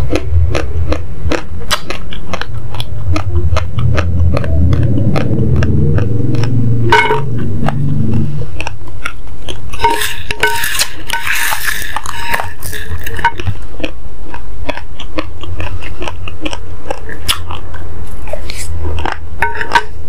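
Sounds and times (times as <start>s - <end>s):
chewing crunchy rice grains: 0.0s - 6.6s, 8.4s - 20.0s
spoon scooping rice grains: 9.8s - 13.4s.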